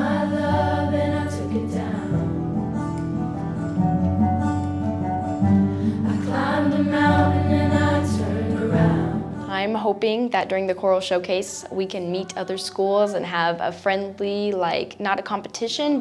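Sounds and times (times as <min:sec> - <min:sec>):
girls choir singing: 0:00.0 - 0:02.8, 0:05.8 - 0:09.6
piano accompaniment: 0:00.0 - 0:09.7.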